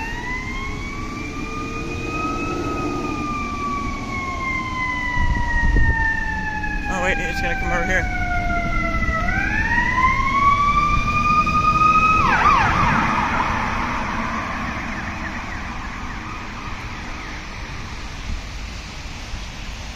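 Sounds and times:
emergency siren wailing and warbling: 0.0s - 18.6s
vehicle noise rushing: 0.0s - 19.9s.

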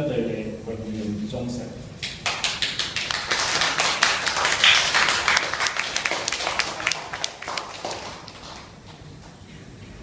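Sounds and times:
crowd applauding: 2.1s - 9.2s.

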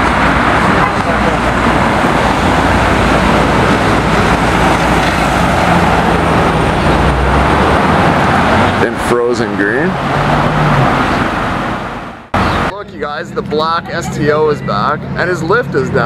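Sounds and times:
deep engine hum: 0.0s - 16.0s
road traffic passing: 0.0s - 16.0s.

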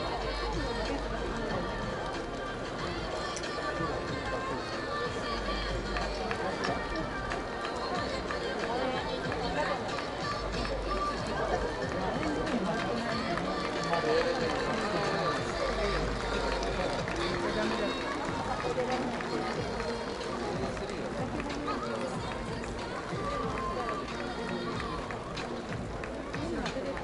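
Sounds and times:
many overlapping voices: 0.0s - 27.0s
music over public-address system: 0.0s - 27.0s.

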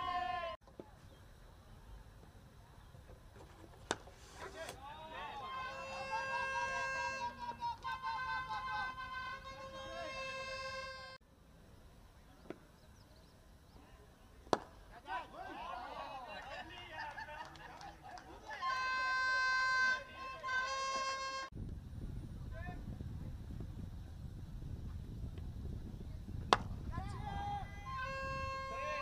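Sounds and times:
faint outdoor background: 0.0s - 29.0s
cricket bat striking ball: 14.5s - 14.7s, 26.5s - 26.8s.

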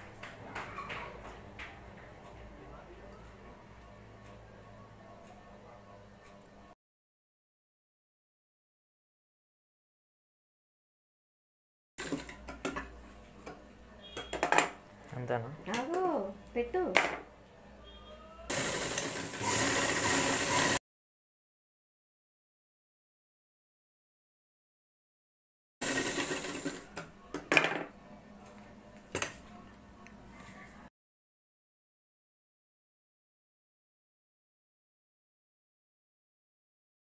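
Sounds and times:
sewing machine stitching: 12.0s - 12.4s, 18.5s - 20.8s, 25.8s - 27.0s.

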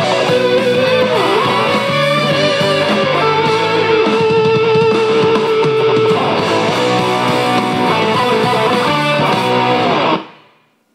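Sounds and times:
electric guitar melody: 0.0s - 10.6s.

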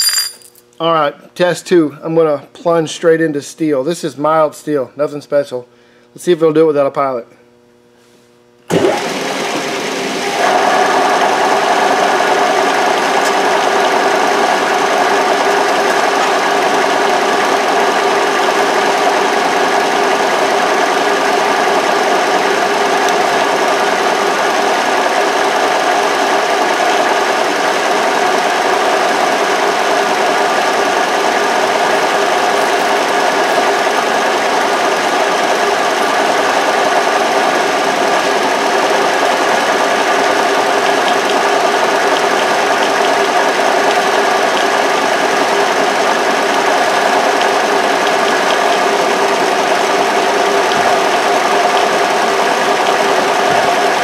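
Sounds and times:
milling machine cutting steel: 10.3s - 27.6s, 28.4s - 54.0s.

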